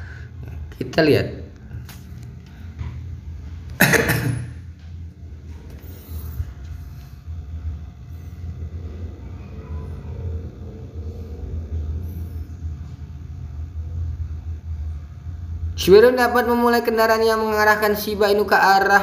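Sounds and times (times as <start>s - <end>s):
low steady background rumble: 0.0s - 19.0s.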